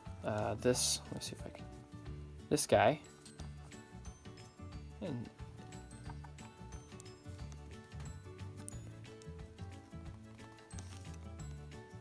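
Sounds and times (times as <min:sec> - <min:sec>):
quiet background music: 0:00.0 - 0:12.0
light ticking percussion: 0:05.0 - 0:12.0.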